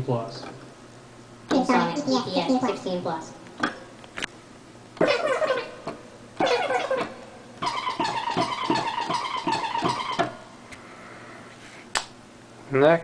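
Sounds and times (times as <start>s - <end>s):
garbled pitch-shifted voice sample: 5.0s - 5.8s, 6.4s - 7.2s.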